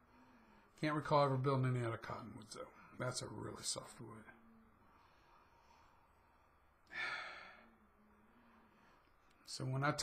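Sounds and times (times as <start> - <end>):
man sighing: 6.8 - 7.7.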